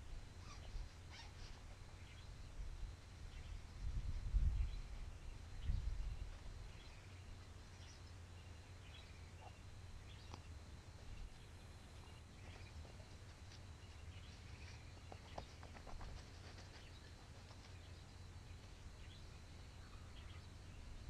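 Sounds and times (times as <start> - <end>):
faint bird chirps: 0.3 - 21.0.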